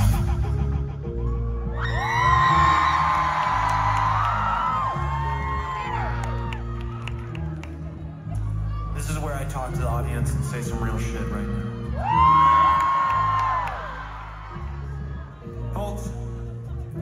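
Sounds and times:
live band music: 0:00.0 - 0:01.2
held low chords and bass: 0:00.0 - 0:17.0
audience cheering and screaming: 0:00.9 - 0:09.8, 0:11.0 - 0:16.6.

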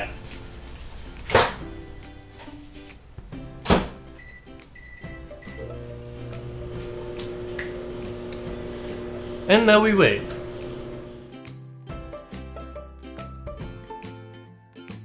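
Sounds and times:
background music: 0:00.0 - 0:15.0
microwave door thunks: 0:03.6 - 0:04.1
microwave oven humming: 0:04.4 - 0:11.3.

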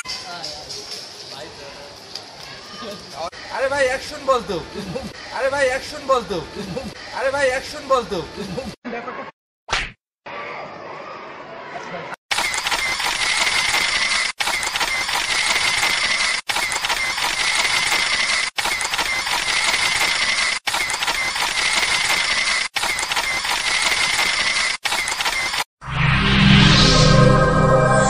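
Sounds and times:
steady high tone: 0:25.8 - 0:28.0.

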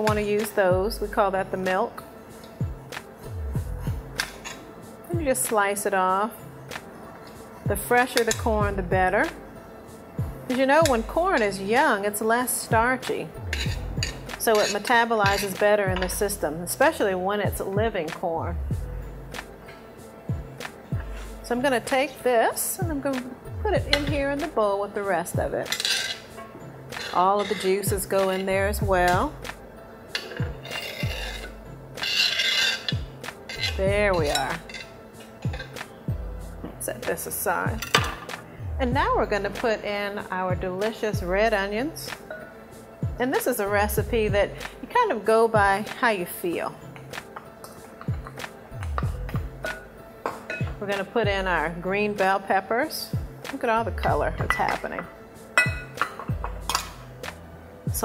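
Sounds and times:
background music with deep beat: 0:00.0 - 0:05.6, 0:06.4 - 0:11.8, 0:12.6 - 0:22.0, 0:22.8 - 0:24.6, 0:25.3 - 0:45.0, 0:45.6 - 0:52.3, 0:53.1 - 0:58.0
metal cup clinking against bowl: 0:13.5 - 0:16.2, 0:25.7 - 0:28.5, 0:30.1 - 0:35.8, 0:49.6 - 0:50.8, 0:54.4 - 0:57.0.

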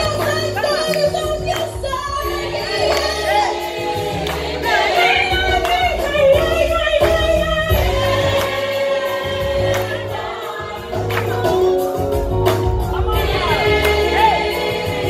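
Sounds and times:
gospel choir singing: 0:00.0 - 0:15.0
lead voice singing: 0:01.8 - 0:15.0.

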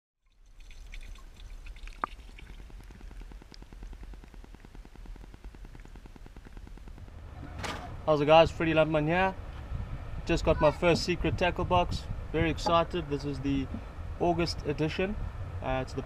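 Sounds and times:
drip-like plink: 0:00.2 - 0:02.6
water lapping and trickling: 0:00.2 - 0:07.3
low rumble: 0:01.9 - 0:16.0.

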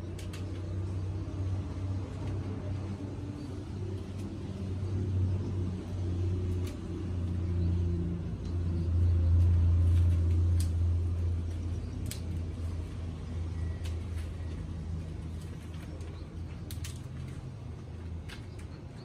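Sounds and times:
low engine hum: 0:00.0 - 0:19.0.

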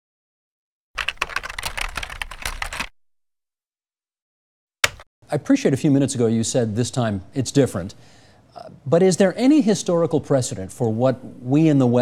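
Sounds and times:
fast clatter of clicks: 0:01.0 - 0:02.9.

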